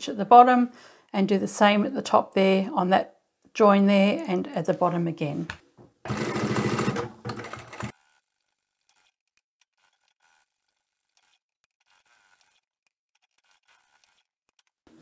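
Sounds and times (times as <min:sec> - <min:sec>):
sewing machine stitching: 0:06.0 - 0:15.0.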